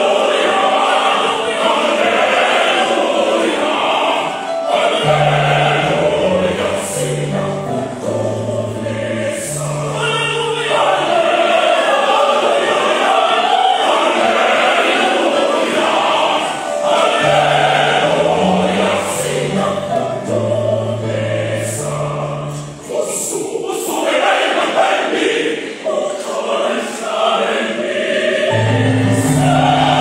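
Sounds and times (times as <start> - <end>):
mixed choir singing: 0.0 - 30.0.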